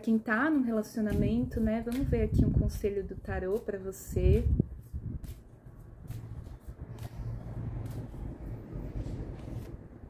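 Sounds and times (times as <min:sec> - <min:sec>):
low rumble: 0:04.2 - 0:10.0
cards being shuffled: 0:09.3 - 0:09.8.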